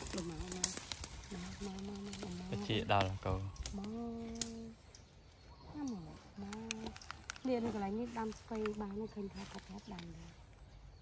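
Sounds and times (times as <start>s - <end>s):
faint crackling clicks: 0.0s - 5.1s, 6.3s - 10.3s
woman humming: 3.8s - 4.9s.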